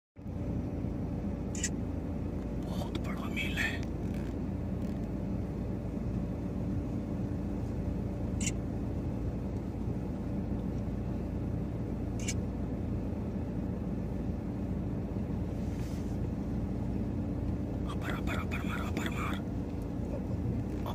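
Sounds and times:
vehicle engine humming: 0.2 - 20.9.

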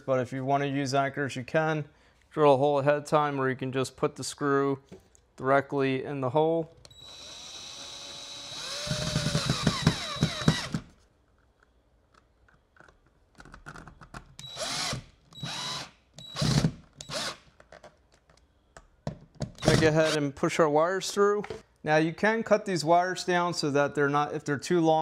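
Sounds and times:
cordless drill driving screws: 6.9 - 10.9, 14.4 - 17.4, 19.6 - 20.2
drill trigger pulses: 6.9 - 10.9, 14.4 - 17.4, 19.6 - 20.2.

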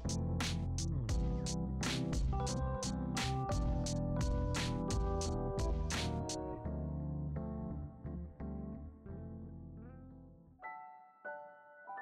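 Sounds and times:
sustained low bass line: 0.0 - 8.4
melody of pitched notes: 0.0 - 11.5.

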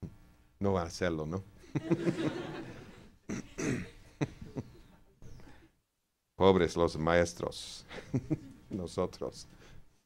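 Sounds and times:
man clearing his throat: 3.3 - 4.0
short coughs: 3.3 - 4.0.

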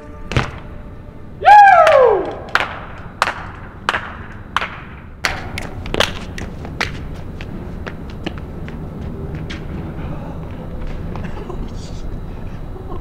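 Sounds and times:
bike landing thud on concrete: 0.2 - 0.8.

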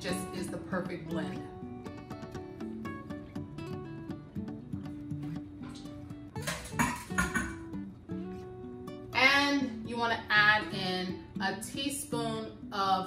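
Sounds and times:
acoustic guitar music: 0.0 - 13.0.

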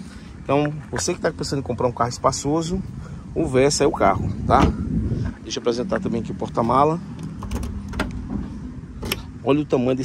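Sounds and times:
trunk latch clicks: 7.2 - 8.3, 9.0 - 9.3.

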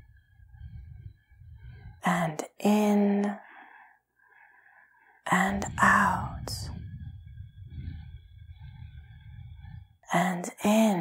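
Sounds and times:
woman speaking softly: 2.0 - 3.4, 5.3 - 6.8, 10.1 - 11.0.

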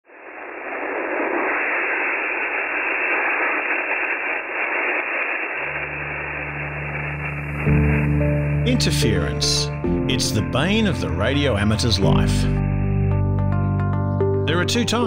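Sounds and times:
radio static hiss: 0.1 - 11.8
low steady drone: 0.1 - 14.4.

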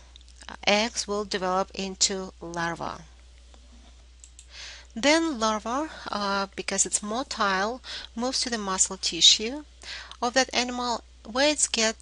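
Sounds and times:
steady low hum: 0.0 - 12.0
faint clicks: 4.2 - 4.5
soft intake of breath: 4.4 - 4.9, 7.8 - 8.2, 9.8 - 10.2
person speaking: 5.0 - 12.0.

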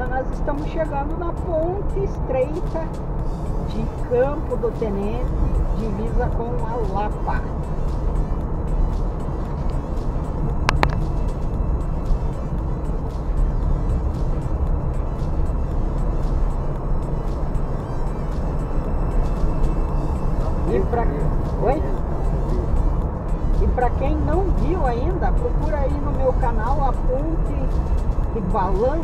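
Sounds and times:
car road and engine rumble: 0.0 - 29.0
sharp tick: 10.6 - 11.2.

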